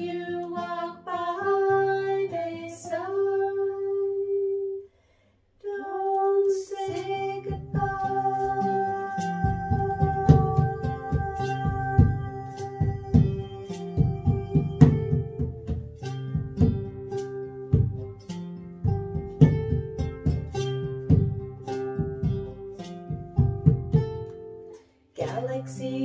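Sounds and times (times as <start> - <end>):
classical guitar plucking: 0.0 - 4.8, 6.3 - 26.0
woman singing: 0.0 - 4.9, 5.6 - 15.6, 25.2 - 26.0.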